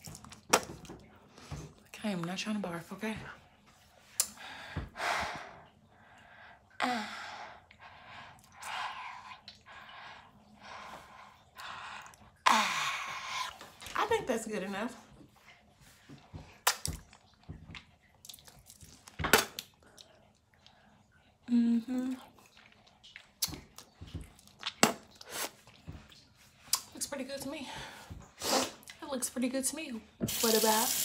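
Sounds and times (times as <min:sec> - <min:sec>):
lip smacks and tongue clicks: 0:09.4 - 0:09.7, 0:22.1 - 0:26.9.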